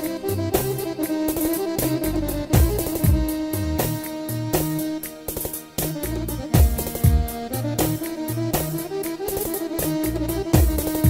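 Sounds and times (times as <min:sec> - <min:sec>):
bass line: 0:00.0 - 0:05.0, 0:05.8 - 0:11.0
drum machine beat: 0:00.0 - 0:11.0
electronic keyboard dance music: 0:00.0 - 0:11.0
keyboard lead melody: 0:00.0 - 0:11.0.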